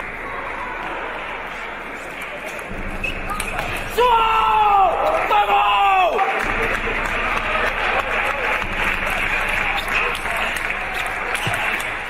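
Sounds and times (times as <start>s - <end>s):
person shouting a cheer: 3.9s - 6.4s.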